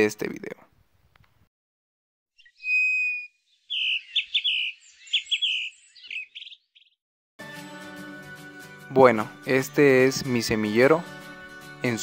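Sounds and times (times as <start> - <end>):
songbird singing: 2.4 - 7.0
soft background music: 7.4 - 12.0.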